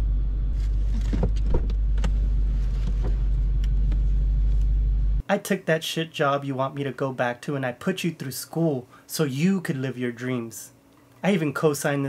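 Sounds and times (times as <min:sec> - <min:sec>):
car running inside cabin: 0:00.0 - 0:05.2.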